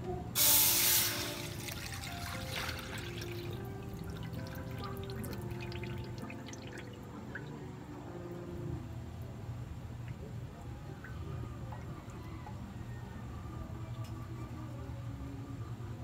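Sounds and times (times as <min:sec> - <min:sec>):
liquid pouring into metal wok: 0:00.4 - 0:06.9
liquid dripping: 0:00.9 - 0:08.0, 0:10.0 - 0:12.7.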